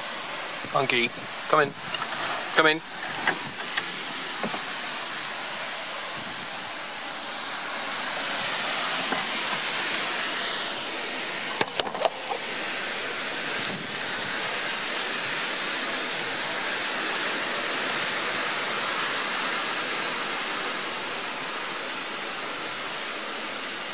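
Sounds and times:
wind gusting through trees: 0.0 - 23.9.

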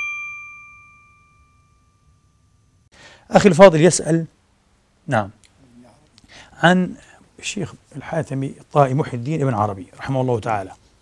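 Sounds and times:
bell-like chime ringing: 0.0 - 2.9.

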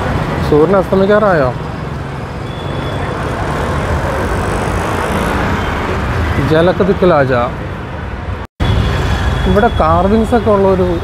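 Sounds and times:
auto-rickshaw engines: 0.0 - 11.0
road noise: 0.0 - 11.0.

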